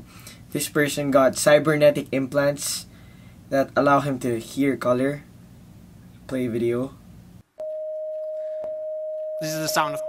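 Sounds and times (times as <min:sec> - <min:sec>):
pure electronic sine tone: 0:07.6 - 0:10.0.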